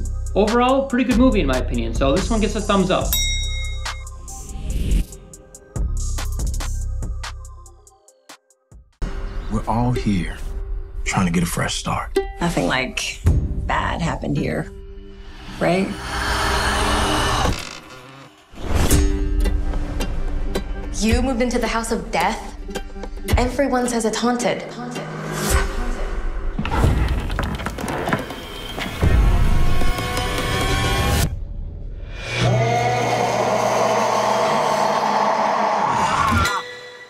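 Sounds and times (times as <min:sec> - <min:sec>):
trailer music: 0:00.0 - 0:37.0.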